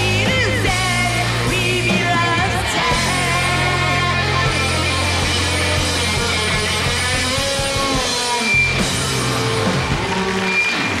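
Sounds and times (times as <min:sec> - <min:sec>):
drums: 0:00.0 - 0:11.0
electric and acoustic guitars: 0:00.0 - 0:11.0
live rock band playing: 0:00.0 - 0:11.0.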